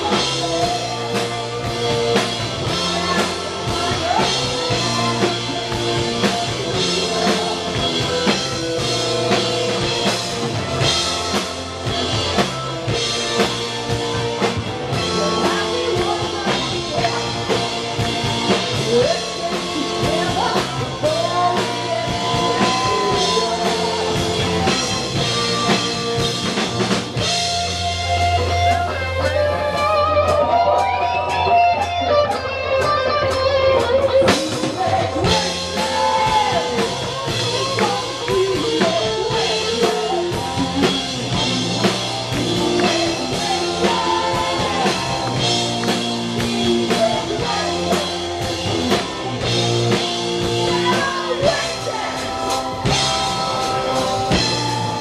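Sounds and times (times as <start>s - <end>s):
bass: 0.0s - 55.0s
drum kit beat: 0.0s - 55.0s
electric guitar lead lines: 0.0s - 55.0s
keyboard: 0.0s - 55.0s.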